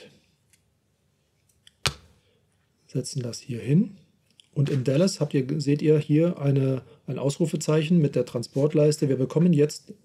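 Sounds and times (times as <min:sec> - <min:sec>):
faint clicks of handled pieces: 0:00.4 - 0:00.7
game piece clicking on board: 0:01.8 - 0:02.1.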